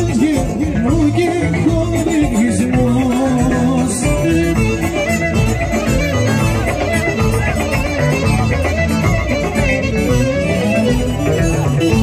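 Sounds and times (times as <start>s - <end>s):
live folk dance music: 0.0s - 12.0s.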